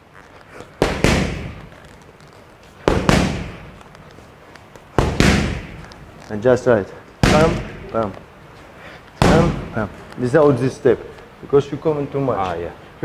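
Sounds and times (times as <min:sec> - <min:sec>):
boxing gloves hitting mitts: 0:00.5 - 0:04.1, 0:04.7 - 0:06.5, 0:07.2 - 0:08.2, 0:09.2 - 0:10.1.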